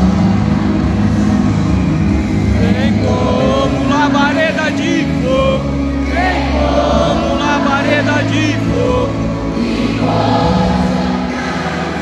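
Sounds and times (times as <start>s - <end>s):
low bass rumble: 0.0s - 12.0s
many voices singing: 2.4s - 12.0s.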